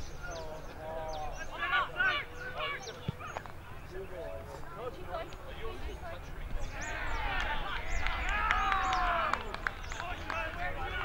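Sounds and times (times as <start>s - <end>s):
people shouting and calling: 1.1s - 3.3s, 6.6s - 11.0s.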